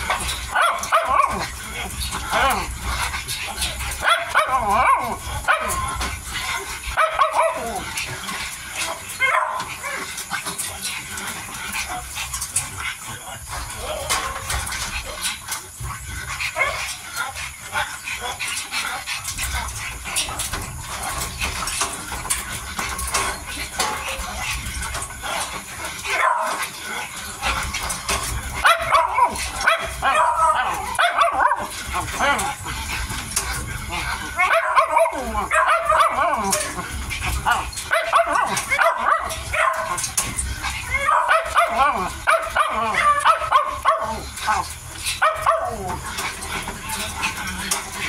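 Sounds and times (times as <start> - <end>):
puppies eating from bowl: 0.0 - 48.0
puppies whimpering and yipping: 0.0 - 48.0.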